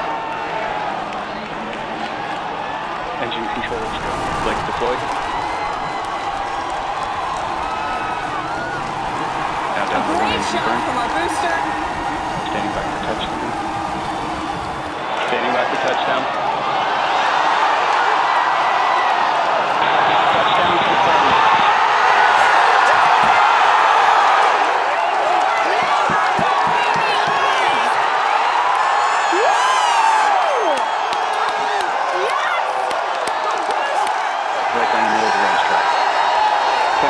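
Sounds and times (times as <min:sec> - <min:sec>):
large crowd cheering and clapping: 0:00.0 - 0:37.0.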